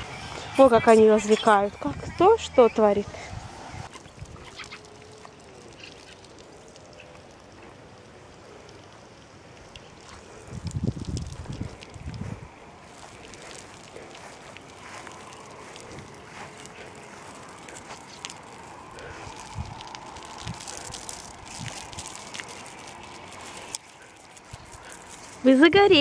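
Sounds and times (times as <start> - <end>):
wind buffeting microphone: 0.0 - 4.6, 10.2 - 23.8.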